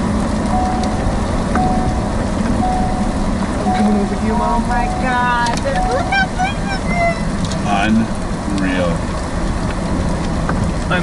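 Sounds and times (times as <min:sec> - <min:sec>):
rain striking vehicle windshield: 0:00.0 - 0:11.0
steady low rumble: 0:00.0 - 0:11.0.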